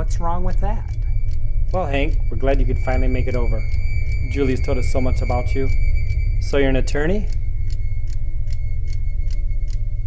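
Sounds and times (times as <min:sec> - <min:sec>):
clock ticking: 0:00.0 - 0:10.0
loud steady low drone: 0:00.0 - 0:10.0.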